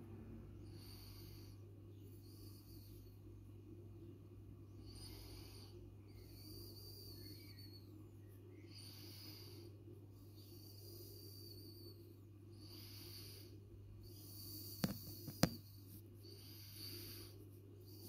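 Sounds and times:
faint low hum: 0:00.0 - 0:18.0.

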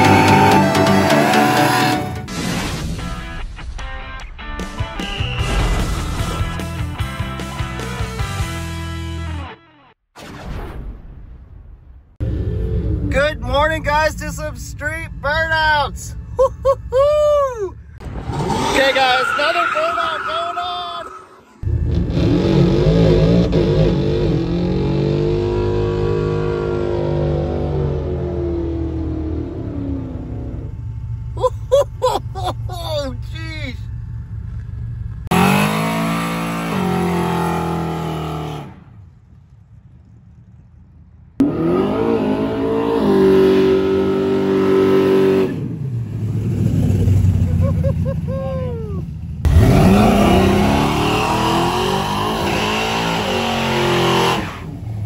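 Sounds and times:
car engines revving hard: 0:00.0 - 0:02.3, 0:21.6 - 0:30.7, 0:35.2 - 0:38.8, 0:41.4 - 0:48.3, 0:49.4 - 0:55.0.

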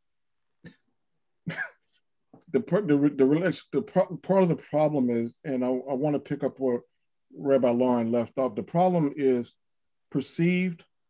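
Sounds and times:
person clearing throat: 0:01.5 - 0:01.8.

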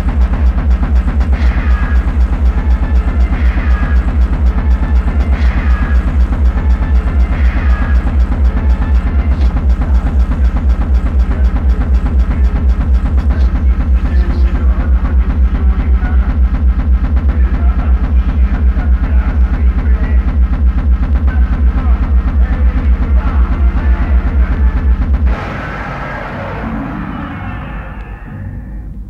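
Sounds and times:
fast techno kick drum: 0:00.0 - 0:27.7
dark synth layers: 0:00.0 - 0:29.0.

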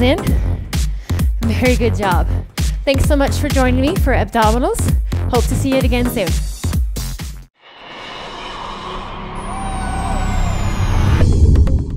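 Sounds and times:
thin whistle falling in pitch: 0:09.4 - 0:11.3.

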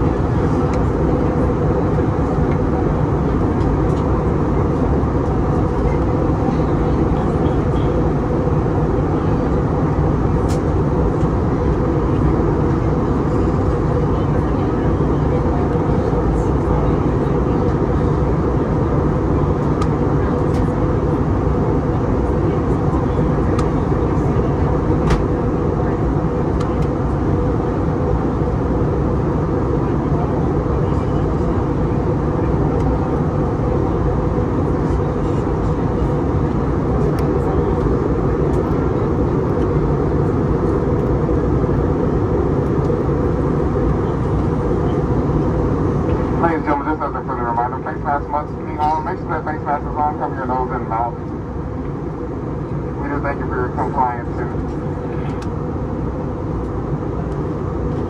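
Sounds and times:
airplane cabin engine noise: 0:00.0 - 0:58.0.

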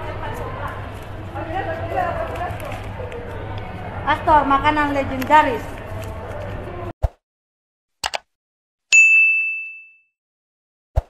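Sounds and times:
notification bell ding: 0:08.9 - 0:10.1.

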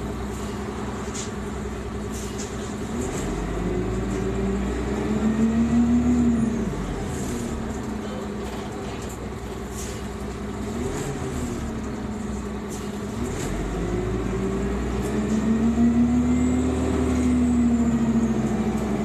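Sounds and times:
bus engine rumble: 0:00.0 - 0:19.0.

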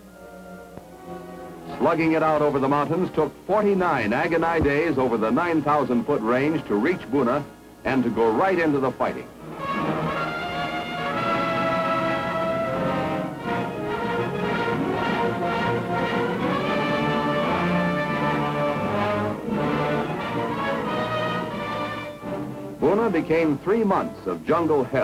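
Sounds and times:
orchestral music: 0:00.0 - 0:03.2, 0:09.4 - 0:24.8
brass sustained notes: 0:09.1 - 0:24.8.

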